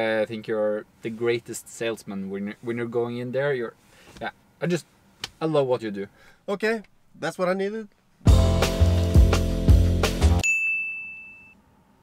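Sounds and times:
background music with beat: 8.3 - 10.4
high bell ding: 10.4 - 11.6.

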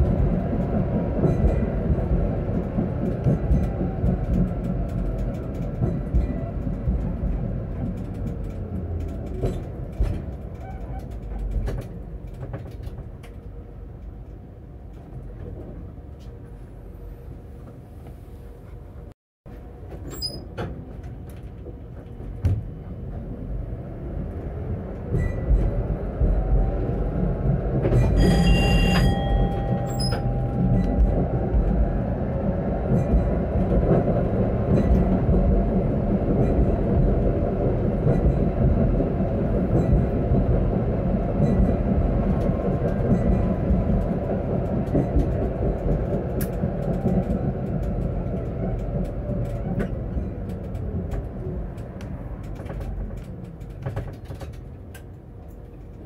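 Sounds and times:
tram wheels rumbling on rails: 0.0 - 56.0
tram motor whine: 22.2 - 54.0
short tone: 28.2 - 31.2.

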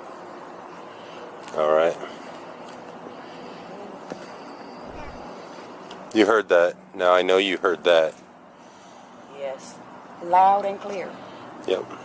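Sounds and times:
outdoor background noise at night: 0.0 - 12.0.

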